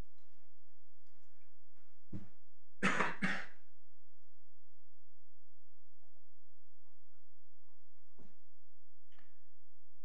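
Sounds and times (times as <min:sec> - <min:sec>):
person coughing: 0:02.8 - 0:03.6.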